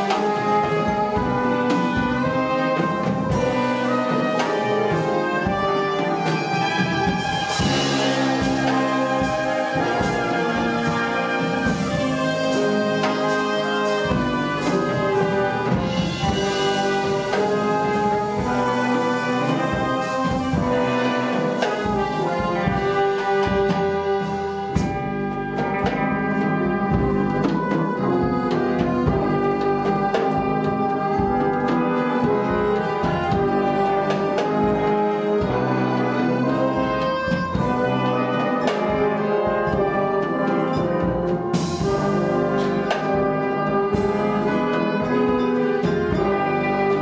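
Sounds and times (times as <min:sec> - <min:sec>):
wind orchestra playing slow chords: 0:00.0 - 0:47.0.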